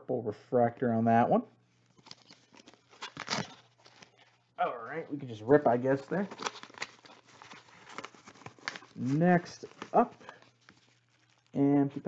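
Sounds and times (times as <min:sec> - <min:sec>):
paper rustling and crinkling: 0:01.7 - 0:04.5, 0:05.6 - 0:11.6.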